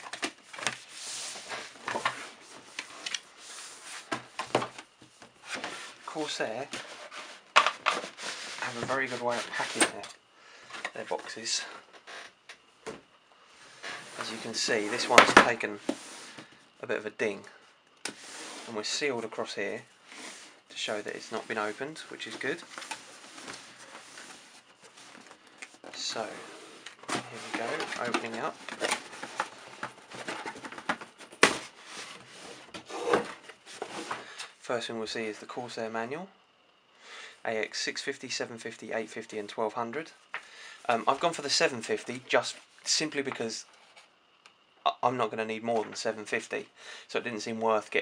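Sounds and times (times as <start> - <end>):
cardboard scraping rustles: 0.0 - 4.4, 5.3 - 10.0, 20.1 - 34.4.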